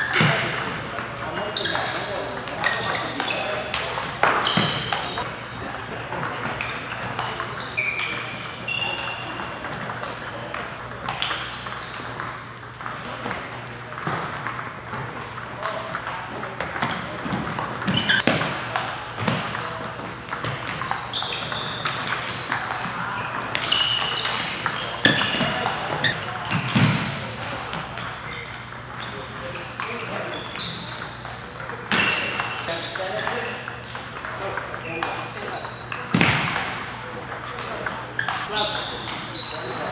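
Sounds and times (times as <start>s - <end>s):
voices echoing in a hall: 0.0s - 39.9s
table tennis balls clicking: 0.6s - 36.6s.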